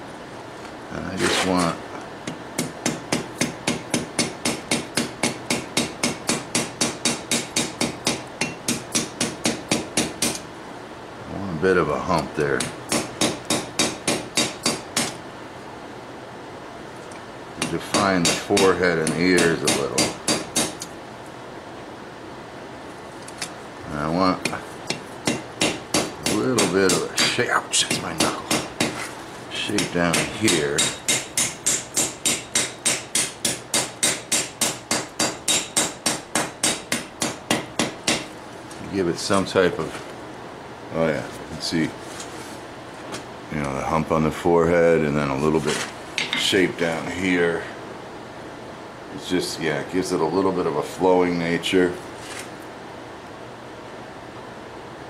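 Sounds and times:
hammer striking metal on anvil: 0:02.3 - 0:10.4, 0:12.6 - 0:15.2, 0:17.6 - 0:20.9, 0:24.9 - 0:29.0, 0:29.8 - 0:38.3.

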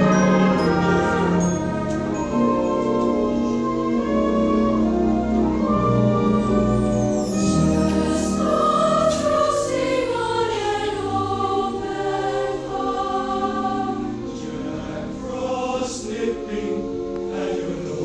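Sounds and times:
school chorus singing: 0:00.0 - 0:18.0.

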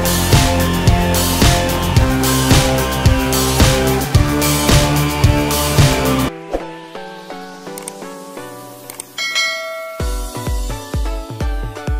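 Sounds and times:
beat with heavy bass drum: 0:00.0 - 0:06.3
short bright chime: 0:09.2 - 0:10.5
soft melodic notes: 0:09.2 - 0:10.8.

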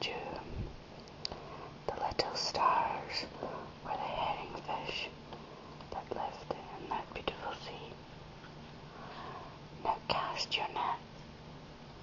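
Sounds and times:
person whispering: 0:00.0 - 0:00.5, 0:01.9 - 0:05.2, 0:05.9 - 0:08.0, 0:09.8 - 0:11.0.

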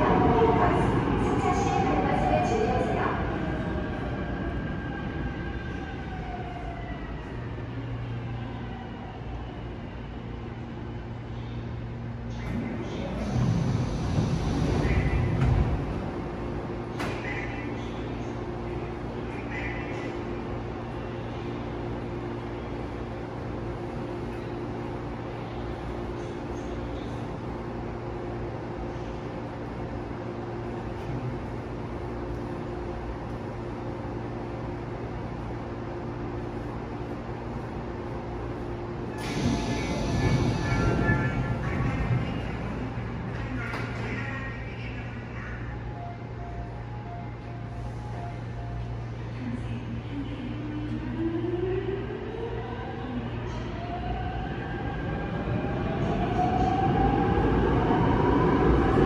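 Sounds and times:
electric train braking: 0:39.1 - 0:41.6
train doors sliding open: 0:39.1 - 0:41.6.

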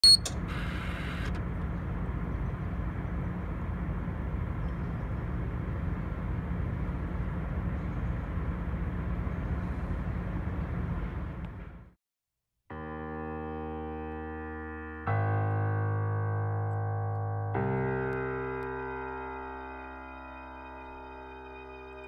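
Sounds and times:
sharp warning beep: 0:00.0 - 0:00.3
steady low rumble: 0:01.4 - 0:12.0.

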